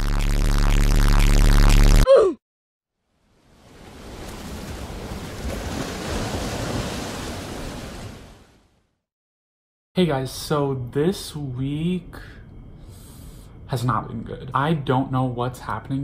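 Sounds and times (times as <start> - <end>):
ocean surf rushing: 3.5 - 8.5.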